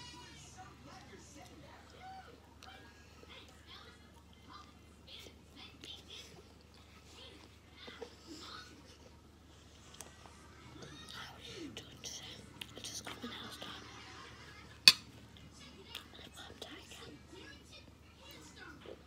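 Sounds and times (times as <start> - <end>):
faint whispered speech: 10.0 - 14.4, 15.5 - 19.0.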